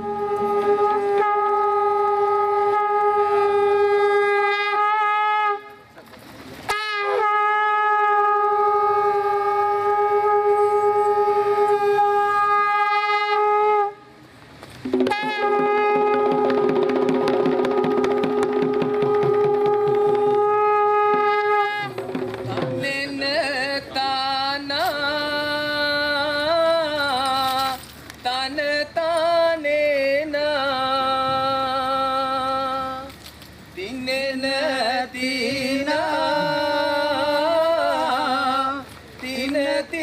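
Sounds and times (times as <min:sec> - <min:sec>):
conch shell blown: 0:00.0 - 0:05.9, 0:06.7 - 0:14.2, 0:14.9 - 0:23.6, 0:35.4 - 0:38.9
hand drums beating fast: 0:14.8 - 0:23.4.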